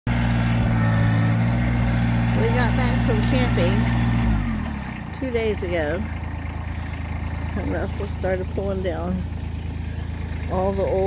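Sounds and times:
tractor diesel engine running: 0:00.1 - 0:11.0.

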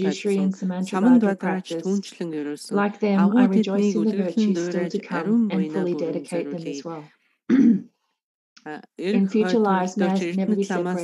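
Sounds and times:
person clearing throat: 0:07.5 - 0:07.9
person coughing: 0:07.5 - 0:07.9.

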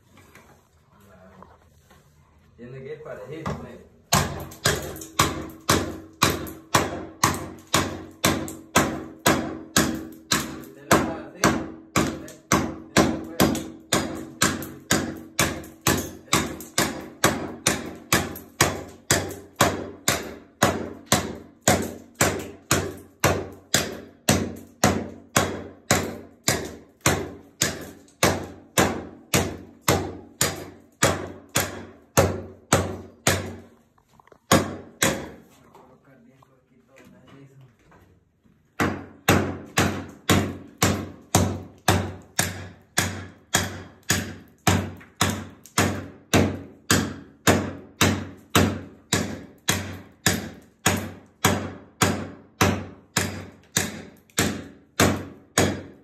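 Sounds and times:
hatchet chopping floor tile: 0:04.1 - 0:33.7, 0:34.5 - 0:35.4, 0:38.8 - 0:56.0.

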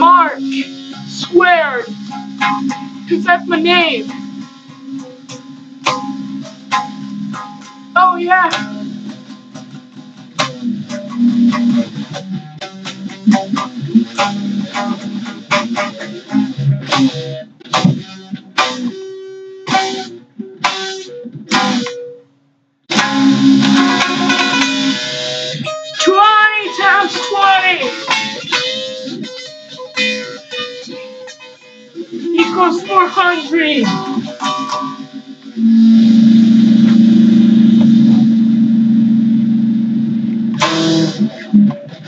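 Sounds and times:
guitar strummed in choppy strokes: 0:00.0 - 0:22.2, 0:22.9 - 0:42.0
boy singing or shouting: 0:08.0 - 0:08.8, 0:26.0 - 0:28.1, 0:32.4 - 0:34.0.

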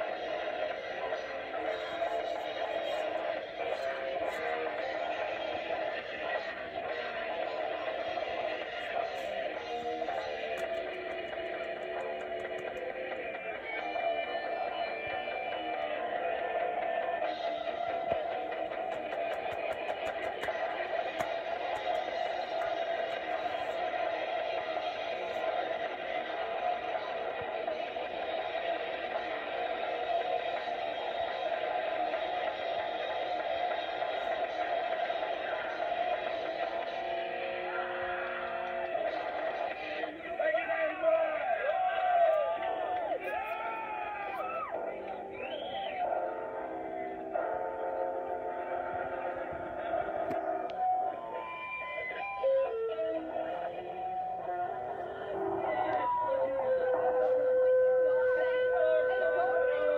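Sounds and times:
live band through tv speaker: 0:00.0 - 0:59.9.

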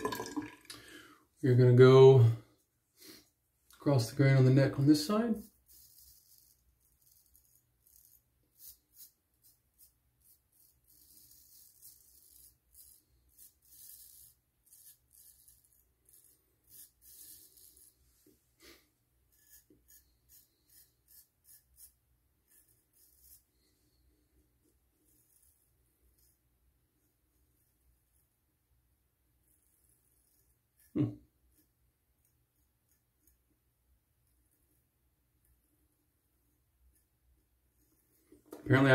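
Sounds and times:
razor scraping stubble: 0:04.2 - 0:24.0.

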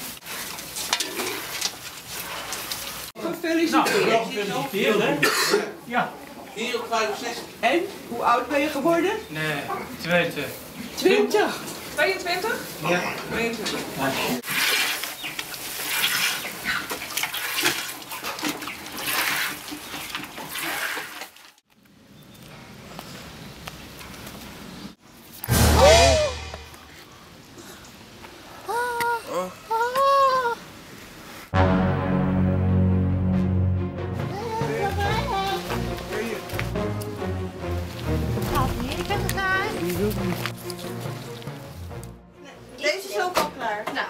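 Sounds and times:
pigs rustling and munching in straw: 0:00.0 - 0:05.0, 0:10.2 - 0:21.6, 0:34.6 - 0:41.7
milk squirting into plastic bucket: 0:14.5 - 0:21.4.

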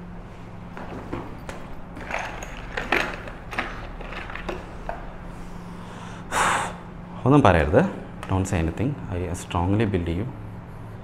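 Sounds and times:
low room hum: 0:00.0 - 0:11.0
short sharp breath: 0:05.3 - 0:06.9.

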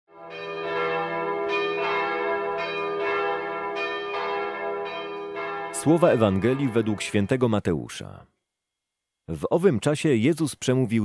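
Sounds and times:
bells ringing: 0:00.2 - 0:07.4.

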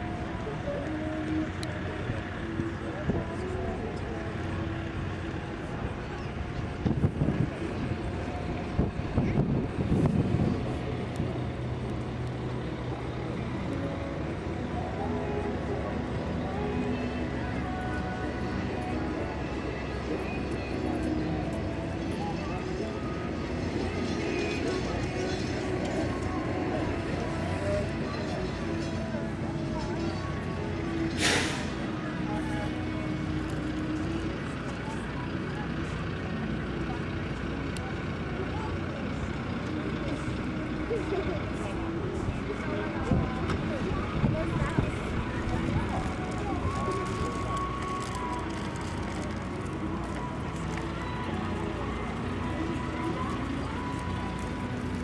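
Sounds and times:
distant voices: 0:00.0 - 0:55.0
hum of engines and machinery: 0:00.0 - 0:55.0
loud hiss: 0:31.1 - 0:31.8.

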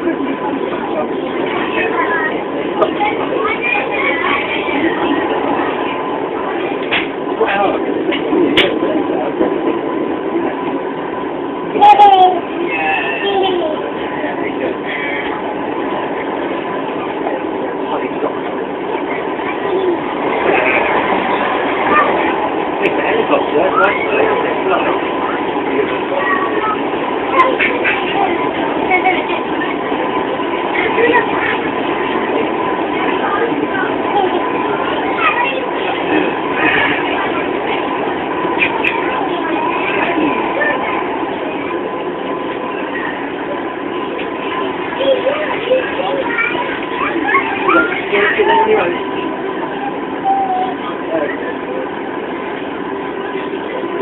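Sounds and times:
freight train passing: 0:00.0 - 0:54.0
passengers chattering: 0:00.0 - 0:54.0
train carriage running noise: 0:00.0 - 0:54.0.

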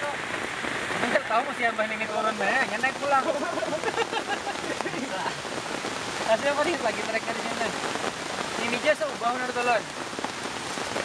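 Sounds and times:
rain pattering on a tarp: 0:00.0 - 0:11.0.

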